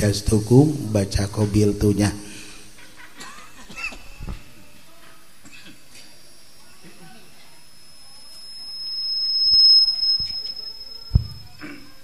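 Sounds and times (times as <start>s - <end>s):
microphone feedback whistle: 7.7s - 12.0s
microphone handling knocks: 11.1s - 11.4s.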